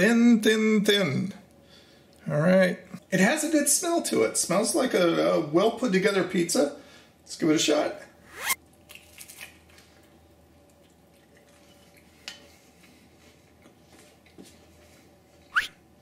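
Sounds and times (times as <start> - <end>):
faint chewing: 8.8 - 15.5.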